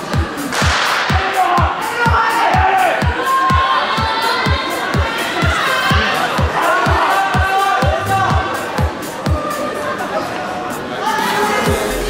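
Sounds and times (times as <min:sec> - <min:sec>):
background music with steady beat: 0:00.0 - 0:12.0
crowd shouting and cheering: 0:00.0 - 0:12.0.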